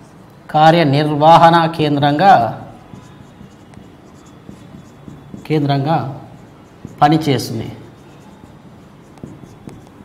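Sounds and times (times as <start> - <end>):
marker writing on whiteboard: 0.0 - 0.3, 2.1 - 10.0.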